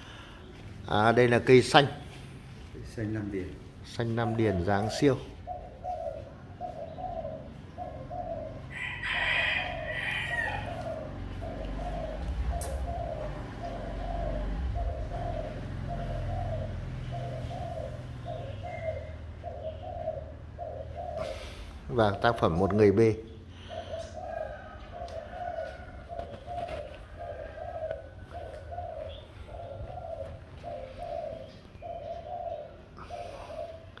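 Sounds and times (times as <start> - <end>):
dove cooing: 0.0 - 34.0.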